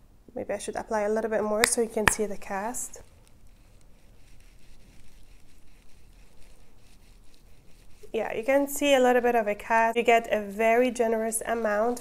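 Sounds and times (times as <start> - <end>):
soft ticks and squishes: 1.6 - 8.2
lotion rubbed into skin: 2.1 - 8.6.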